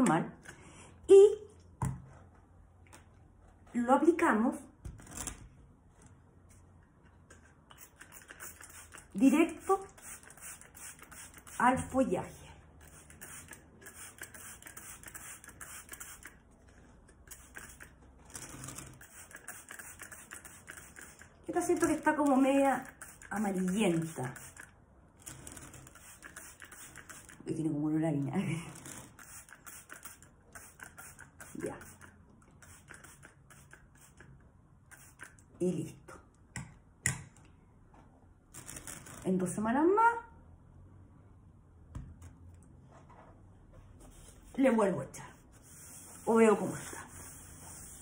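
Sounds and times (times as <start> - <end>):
spray bottle clicking and hissing: 7.3 - 9.1, 9.8 - 11.8, 12.8 - 16.4, 17.2 - 18.0, 19.0 - 22.1, 22.8 - 24.7, 25.8 - 27.4, 29.2 - 34.3, 34.9 - 35.5.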